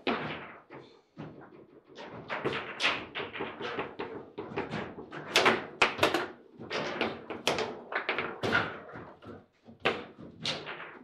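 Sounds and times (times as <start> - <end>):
foosball clacks and knocks: 0.0 - 11.0.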